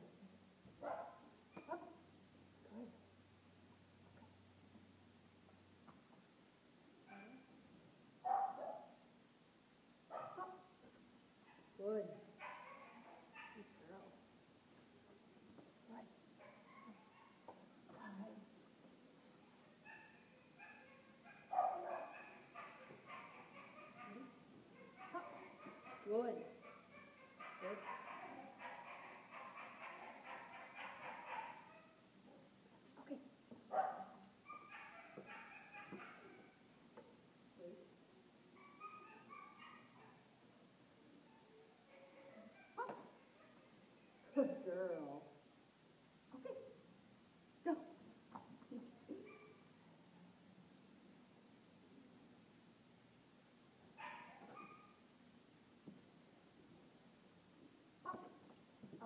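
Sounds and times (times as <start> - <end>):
dog barking: 0.8 - 2.0, 7.1 - 7.5, 8.2 - 9.0, 10.1 - 10.7, 12.4 - 13.8, 16.4 - 17.5, 19.8 - 32.0, 33.7 - 36.6, 38.6 - 40.3, 41.9 - 43.7, 49.2 - 49.7, 54.0 - 55.0.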